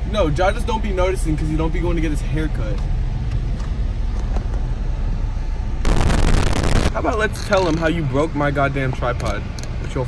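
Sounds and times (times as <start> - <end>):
loud rushing burst of noise: 5.8 - 7.0.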